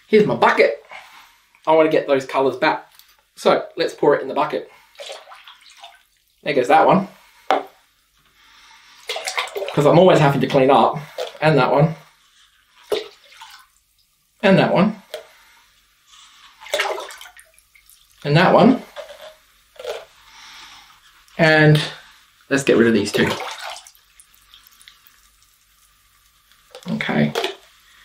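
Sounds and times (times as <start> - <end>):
faint water splash: 4.8 - 6.3, 9.0 - 9.9, 12.8 - 13.8, 16.5 - 18.2, 23.0 - 25.8, 26.6 - 27.8.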